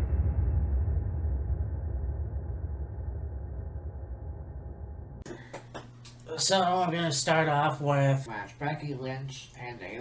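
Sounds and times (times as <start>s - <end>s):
muffled bass rumbling: 0.0s - 5.3s.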